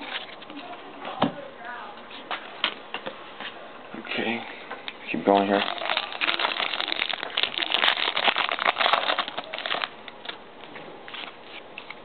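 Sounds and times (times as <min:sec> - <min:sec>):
foil wrapper crinkling: 0:05.2 - 0:10.4.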